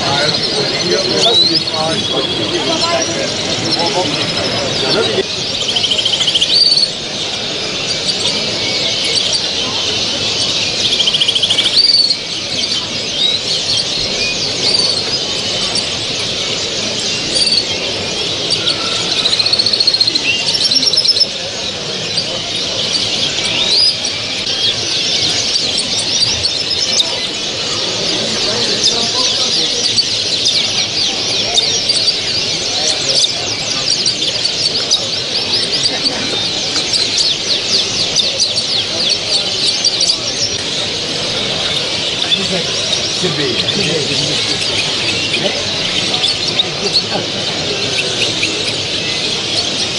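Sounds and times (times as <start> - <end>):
songbirds singing and chirping: 0.0 - 49.9.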